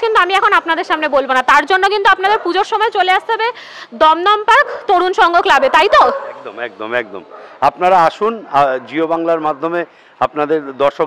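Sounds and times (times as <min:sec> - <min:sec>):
woman talking: 0:00.0 - 0:06.2
man talking: 0:06.3 - 0:11.0.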